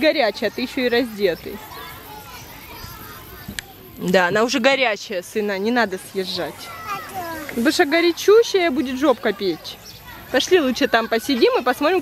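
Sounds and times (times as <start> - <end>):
children playing: 0.0 - 12.0.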